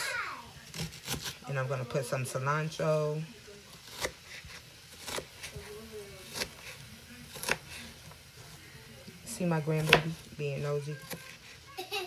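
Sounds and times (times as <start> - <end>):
knife chopping on cutting board: 3.8 - 5.7, 6.3 - 7.8, 9.8 - 10.2.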